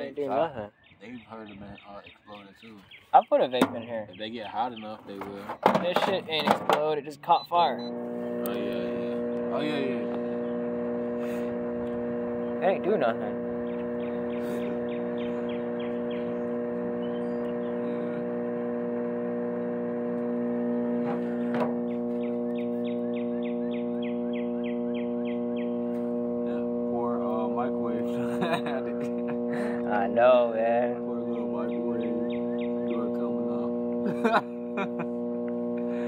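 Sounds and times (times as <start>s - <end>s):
microwave oven humming: 5.7s - 36.0s.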